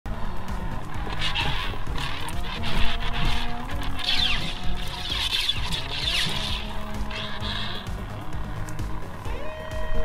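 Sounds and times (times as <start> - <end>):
background music: 0.1 - 10.0
lightsaber electric hum: 0.1 - 10.0.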